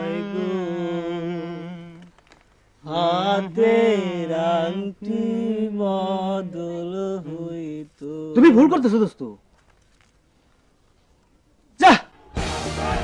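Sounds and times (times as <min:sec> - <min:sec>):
man singing unaccompanied: 0:00.0 - 0:02.1, 0:02.8 - 0:08.6.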